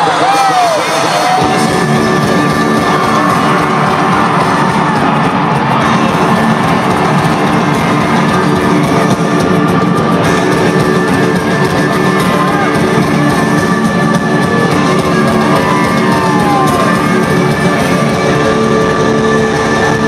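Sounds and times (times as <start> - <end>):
crowd cheering: 0.0 - 20.0
drums: 0.0 - 20.0
electric guitar: 0.0 - 20.0
heavy rock music: 0.0 - 20.0.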